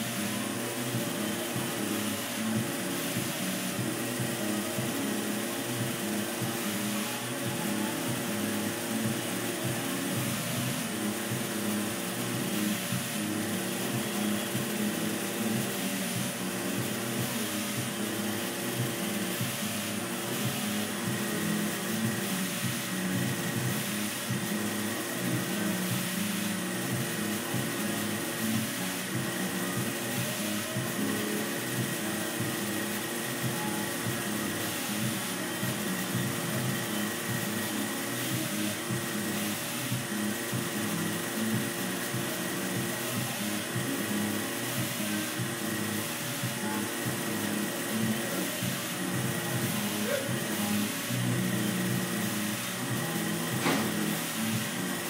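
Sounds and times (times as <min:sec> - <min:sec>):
ventilation blower whirring: 0:00.0 - 0:55.0.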